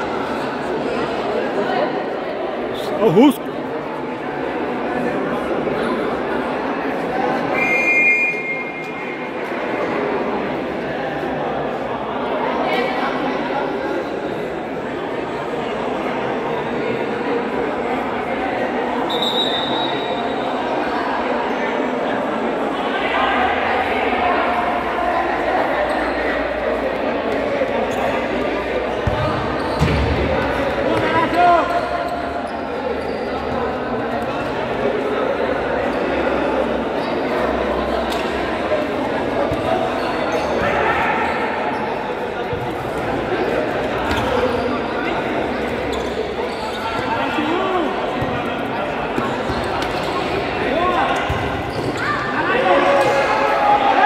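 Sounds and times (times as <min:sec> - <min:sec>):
babble of players' voices: 0:00.0 - 0:54.0
spectators chattering: 0:00.0 - 0:54.0
referee's whistle blast: 0:07.5 - 0:08.9.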